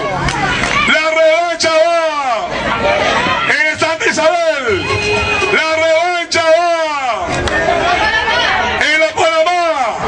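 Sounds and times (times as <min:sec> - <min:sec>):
crowd calling out and chattering: 0:00.0 - 0:10.0
man's amplified voice: 0:00.8 - 0:02.6, 0:03.4 - 0:07.4, 0:08.7 - 0:10.0.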